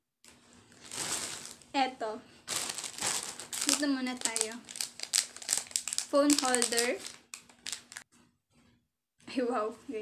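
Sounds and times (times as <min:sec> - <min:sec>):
packaging crinkling: 0:00.7 - 0:01.7, 0:02.5 - 0:08.1
person speaking: 0:01.1 - 0:04.7, 0:06.0 - 0:07.0.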